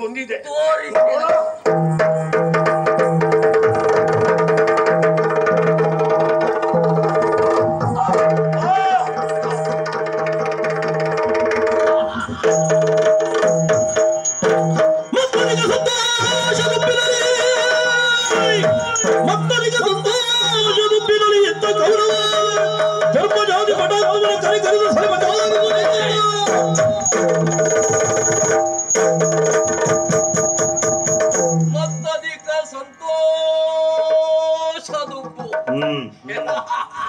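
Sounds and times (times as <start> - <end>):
busy drumming: 0.0 - 37.0.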